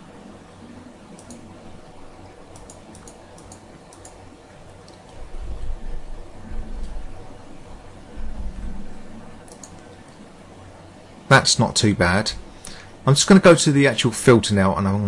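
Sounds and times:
computer mouse clicking: 1.2s - 1.5s, 2.5s - 4.2s, 4.8s - 5.7s, 9.4s - 10.1s
deep low rumble: 8.1s - 9.3s.

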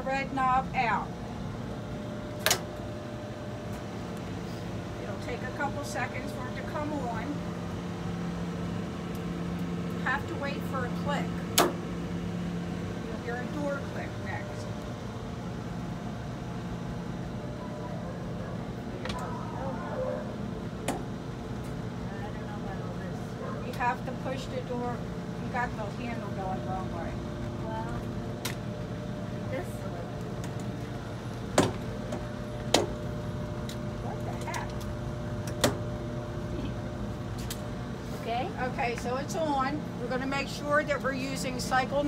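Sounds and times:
machinery hum: 0.0s - 42.0s.

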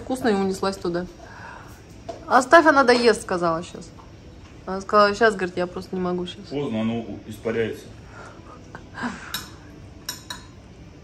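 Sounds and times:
spoon clinking ceramic bowl: 9.3s - 10.6s.

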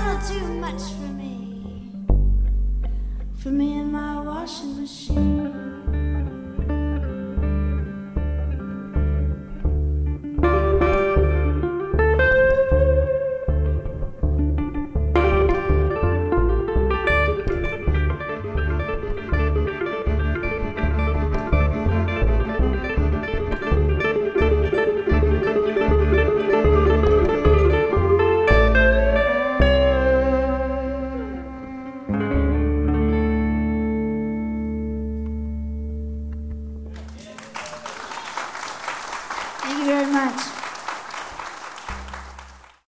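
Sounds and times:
plucked double bass: 0.0s - 37.0s
electric guitar lead lines: 0.0s - 37.1s
bowed violin: 5.1s - 35.5s.

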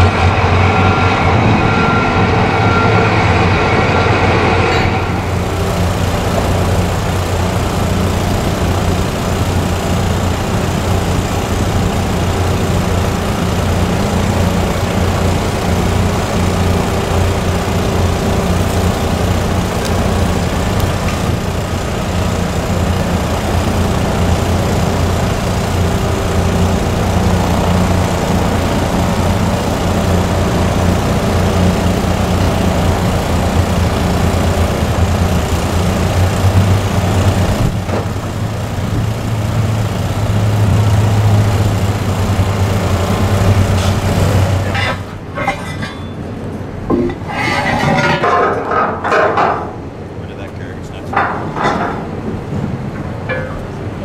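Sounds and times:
engine idling: 0.0s - 54.0s.

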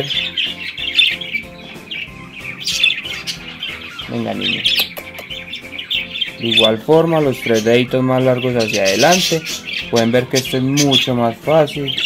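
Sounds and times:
background music: 0.0s - 12.0s
budgerigars chirping and squawking: 0.0s - 12.0s.

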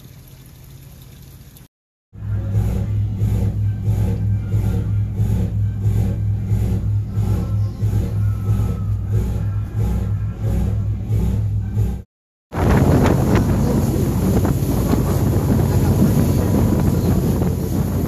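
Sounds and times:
boat engines droning: 2.2s - 12.0s, 12.6s - 18.0s.

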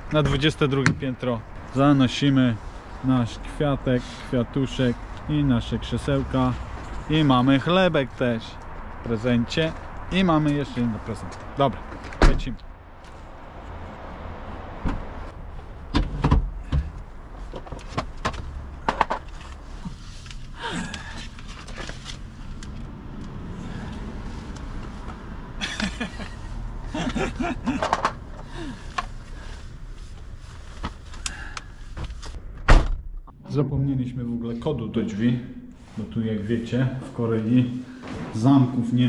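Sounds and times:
car doors opening and shutting: 11.8s - 12.6s, 14.6s - 19.4s, 27.0s - 29.2s, 30.8s - 33.3s
knocks and clunks: 14.7s - 15.2s, 15.9s - 19.3s, 27.0s - 29.1s.

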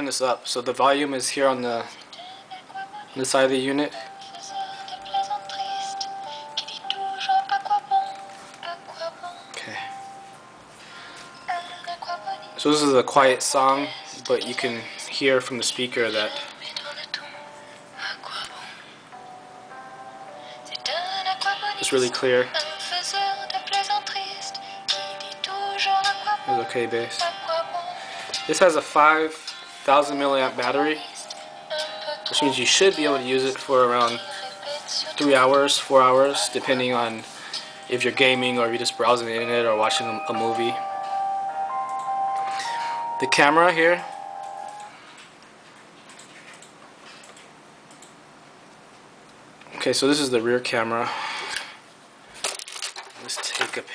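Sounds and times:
low room noise: 0.0s - 53.9s
song through small speaker: 1.5s - 45.0s.

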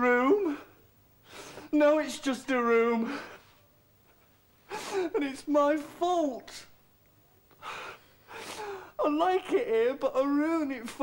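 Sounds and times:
man sobbing: 4.1s - 5.5s.

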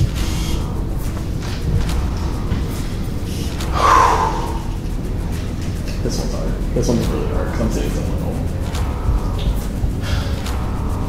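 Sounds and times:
dramatic underscore music: 0.0s - 11.0s
steady low drone: 0.0s - 11.0s.

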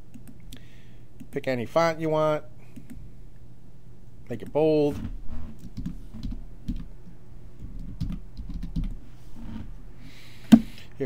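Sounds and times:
typing on computer keyboard: 7.6s - 9.0s.

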